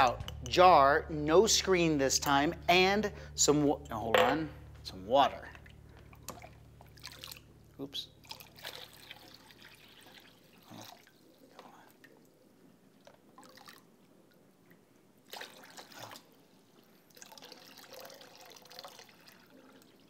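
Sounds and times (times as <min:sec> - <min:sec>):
water pouring into plastic tub: 0:06.2 - 0:07.5, 0:08.2 - 0:11.6, 0:13.0 - 0:13.9, 0:15.2 - 0:16.4, 0:17.1 - 0:20.0.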